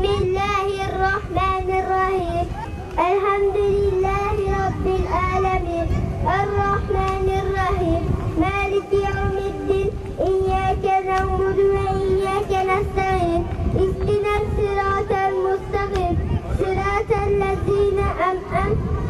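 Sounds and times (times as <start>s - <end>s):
boy singing into microphone: 0.0s - 19.0s.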